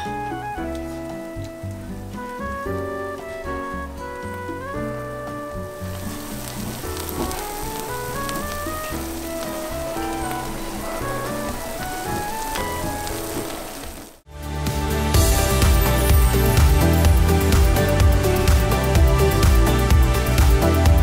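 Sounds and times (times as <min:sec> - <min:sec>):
background music melody: 0:00.0 - 0:21.0
food sizzling on a griddle: 0:05.8 - 0:14.2.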